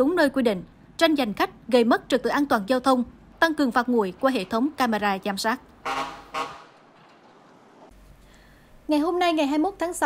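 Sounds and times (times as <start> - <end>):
faint street traffic: 0.0 - 10.0
vehicle horn toot: 5.8 - 6.7.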